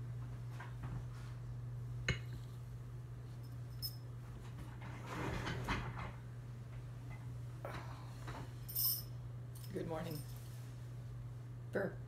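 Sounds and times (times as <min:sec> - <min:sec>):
steady low hum: 0:00.0 - 0:12.0
soft rustling of person moving: 0:00.2 - 0:01.6, 0:09.8 - 0:11.0.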